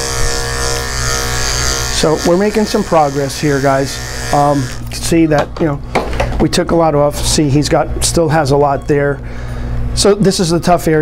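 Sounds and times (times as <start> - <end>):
electric clipper buzzing: 0.0 - 5.2.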